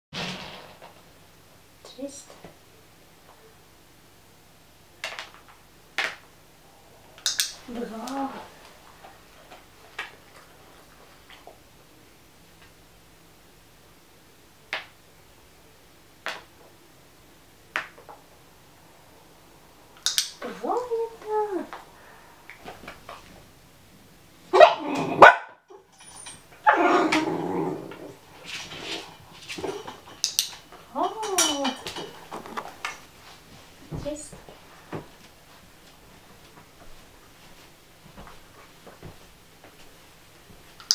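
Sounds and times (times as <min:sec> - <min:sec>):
puppy yelping and barking: 0:24.5 - 0:25.6.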